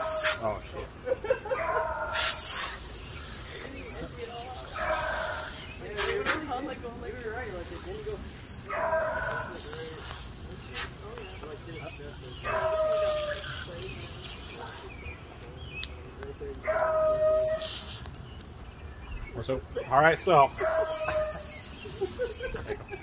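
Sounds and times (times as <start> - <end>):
garden hose spray hissing: 0.0 - 23.0
dog whining and crying: 20.6 - 21.6.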